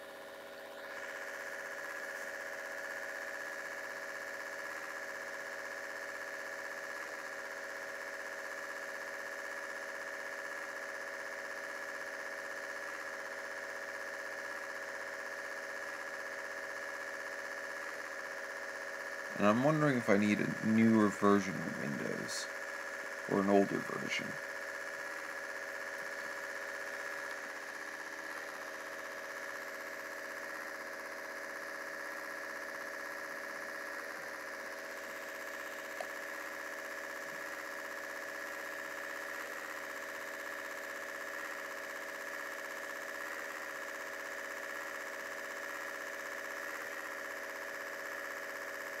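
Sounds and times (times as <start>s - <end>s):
laptop fan humming: 0.0s - 49.0s.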